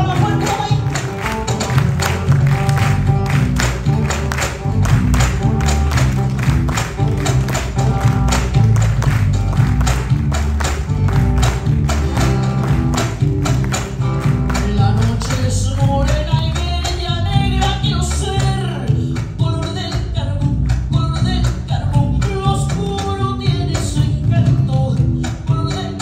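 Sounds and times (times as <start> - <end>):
live band with guitars and bass: 0.0 - 26.0.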